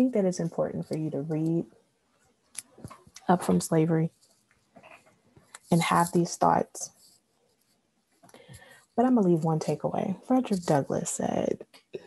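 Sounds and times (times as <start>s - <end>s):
person speaking: 0.0s - 1.6s, 2.6s - 4.1s, 5.6s - 7.0s, 9.0s - 12.0s
soft scratchy noise: 0.0s - 1.7s, 2.6s - 12.0s.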